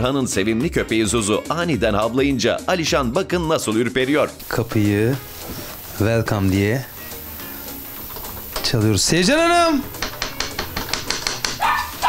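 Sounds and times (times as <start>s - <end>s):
small dog barking: 11.6s - 12.0s.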